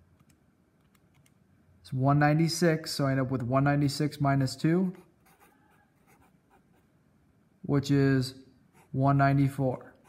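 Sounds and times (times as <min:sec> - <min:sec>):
marker pen scratching on paper: 0:04.9 - 0:06.9, 0:08.7 - 0:09.0.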